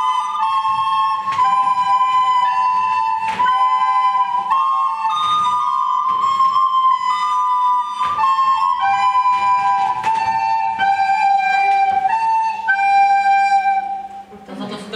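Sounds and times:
recorder ensemble playing: 0.0s - 14.8s.

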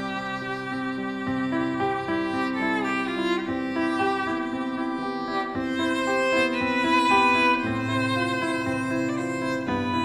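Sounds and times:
violin bowed melody: 0.0s - 10.0s.

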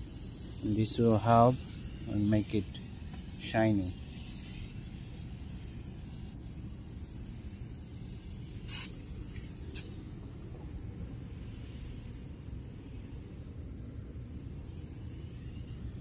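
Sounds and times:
aerosol can spraying: 0.0s - 16.0s.

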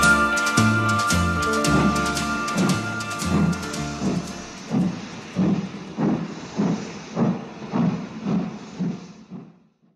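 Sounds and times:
music: 0.0s - 5.4s
rhythmic noisy beats: 0.0s - 9.7s.

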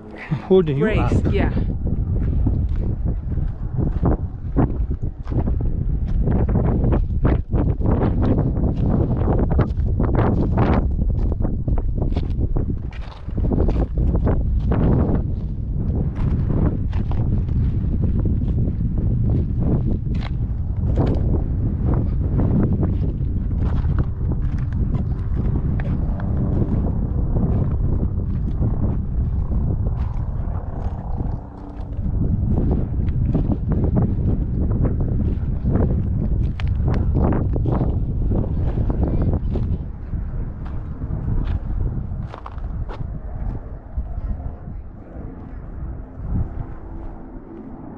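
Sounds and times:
wind rumble on microphone: 0.0s - 47.9s.

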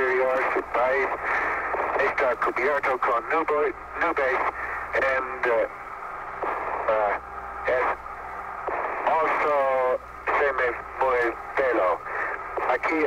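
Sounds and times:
man speaking over radio: 0.0s - 5.8s, 6.4s - 8.0s, 8.8s - 13.0s
radio hiss: 0.0s - 13.0s.

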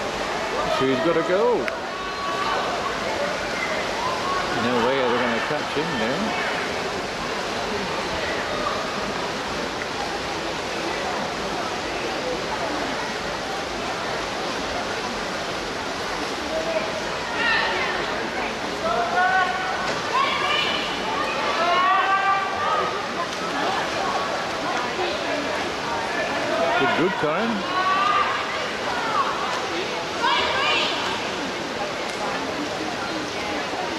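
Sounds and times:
crowd hubbub: 0.0s - 33.9s
swimmers splashing: 16.0s - 33.9s.

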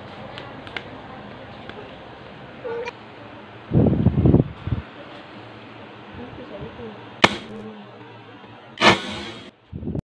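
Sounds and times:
loud sharp crack: 7.2s - 7.6s, 8.8s - 9.5s.

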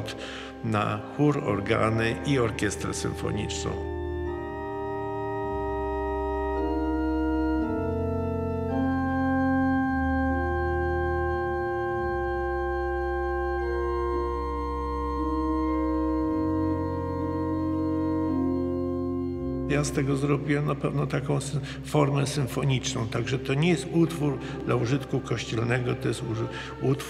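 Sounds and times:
pipe organ chords: 0.0s - 27.0s.

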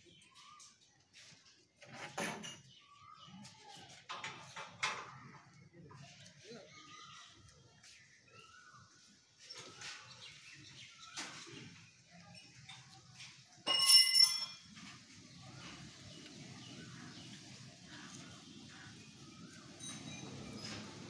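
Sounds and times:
faint knocks and rubbing: 1.2s - 2.8s
sharp metallic ring: 13.7s - 14.6s.

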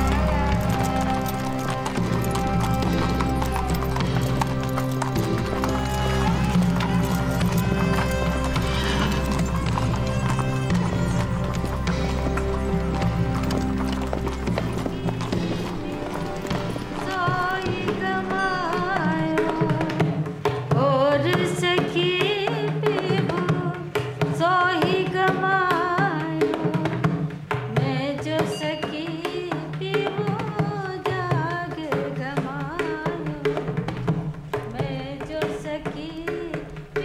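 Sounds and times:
person singing wavering melody: 0.0s - 12.9s, 15.0s - 20.2s
horse hooves clopping on stone: 0.0s - 27.8s.

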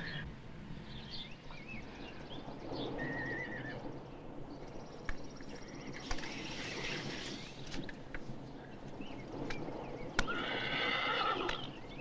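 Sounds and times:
sharp clicks: 9.4s - 10.4s, 11.4s - 11.7s
horse whinnying: 10.3s - 11.7s.

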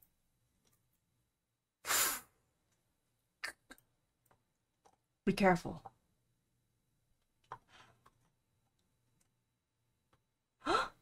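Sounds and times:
sharp sigh-like exhale: 1.8s - 2.4s.

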